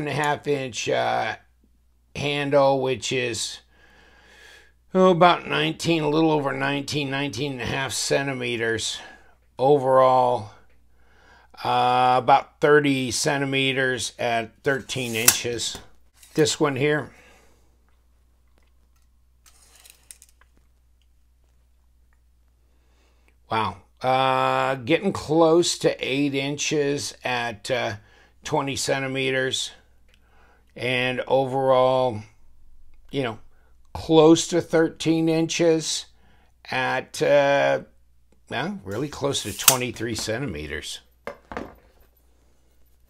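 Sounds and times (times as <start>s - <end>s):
light scrape: 14.7s - 15.6s, 16.2s - 16.6s, 19.4s - 20.4s, 38.9s - 40.0s
knife clacking against cardboard: 14.9s - 15.5s, 39.4s - 39.9s.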